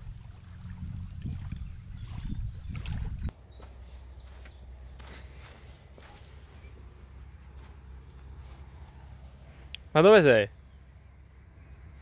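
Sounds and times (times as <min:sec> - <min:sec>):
water lapping at shore: 0:00.0 - 0:03.3
wind rumble on microphone: 0:00.0 - 0:03.4
footsteps in grass: 0:00.0 - 0:06.9.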